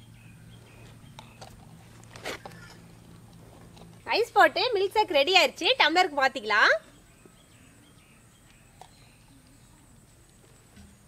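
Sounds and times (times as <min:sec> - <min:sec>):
faint outdoor background: 0:00.0 - 0:11.0
woman speaking: 0:04.1 - 0:06.9.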